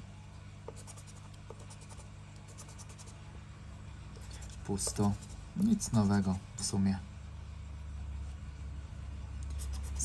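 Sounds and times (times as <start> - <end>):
scraper scratching a card: 0.7 - 3.2, 4.2 - 5.4, 9.5 - 10.0.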